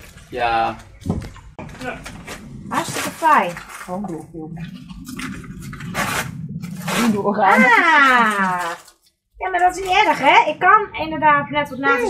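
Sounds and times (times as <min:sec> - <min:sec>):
paper and plastic crinkling: 0:00.0 - 0:04.3, 0:06.0 - 0:10.2.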